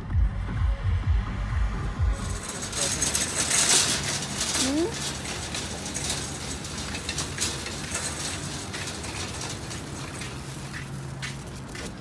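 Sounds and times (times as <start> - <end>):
wire cart rattling on concrete: 2.1 - 12.0.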